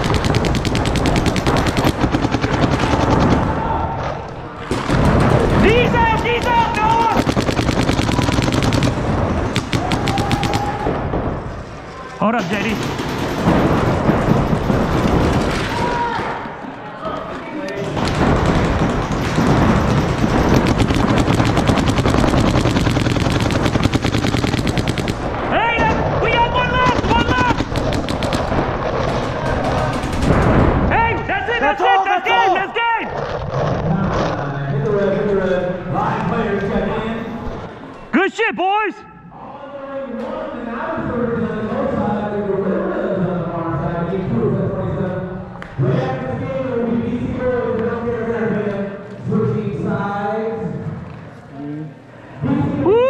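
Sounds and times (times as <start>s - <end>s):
paintball markers firing: 0.0s - 3.5s, 4.6s - 10.9s, 17.7s - 25.5s, 26.7s - 30.4s
noisy background: 0.0s - 53.0s.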